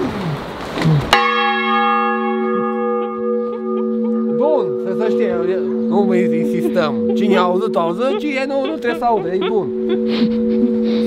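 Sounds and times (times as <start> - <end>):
large church bell ringing: 1.1 - 11.0.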